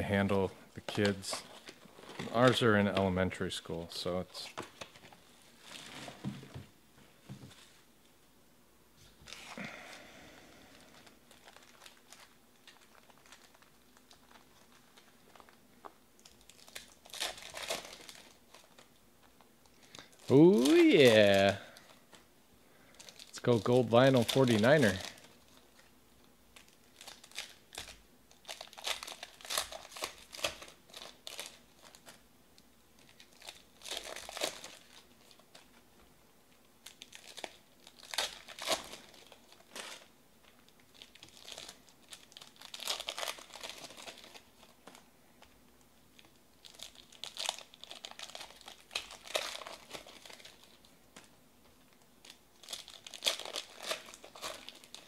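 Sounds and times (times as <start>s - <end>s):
foil wrappers crinkling: 0.0s - 3.1s, 9.3s - 25.9s, 26.5s - 32.2s, 33.0s - 36.0s, 36.8s - 55.0s.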